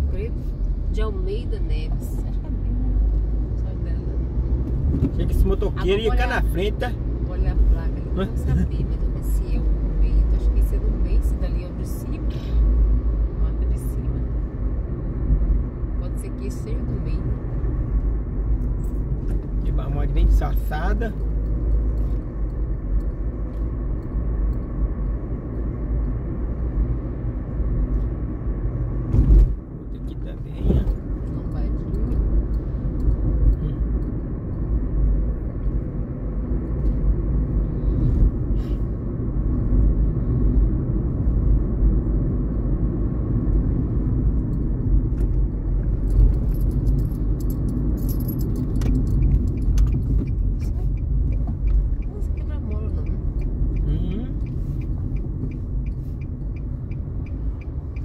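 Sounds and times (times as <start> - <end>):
car road and engine rumble: 0.0 - 58.0.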